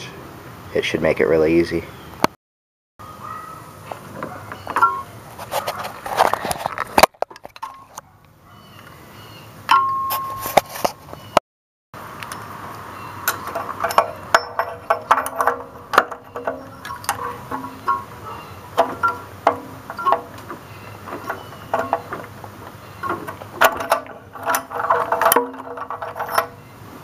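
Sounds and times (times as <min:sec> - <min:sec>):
sharp metallic clicks and clinks: 0:13.2 - 0:26.6.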